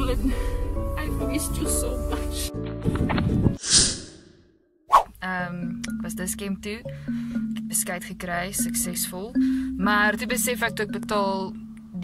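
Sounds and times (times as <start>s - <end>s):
music: 0.0s - 3.6s, 5.2s - 12.0s.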